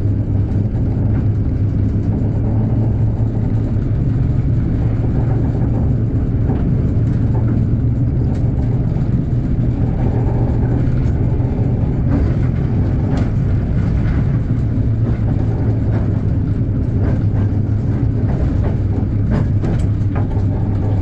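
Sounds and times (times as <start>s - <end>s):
locomotive rumbling: 0.0s - 21.0s.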